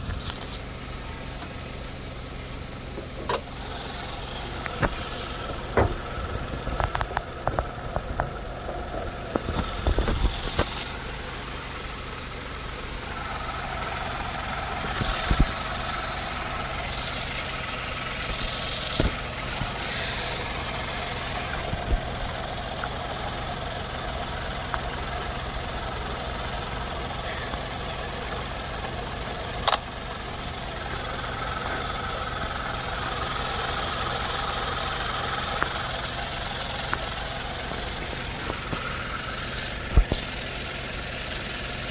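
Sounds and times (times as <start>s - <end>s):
car engine idling: 0.0s - 41.9s.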